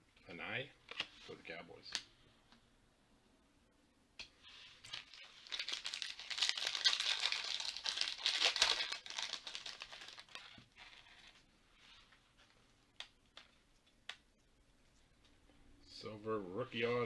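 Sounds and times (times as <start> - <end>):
foil wrapper crinkling and ripping: 4.9 - 11.4.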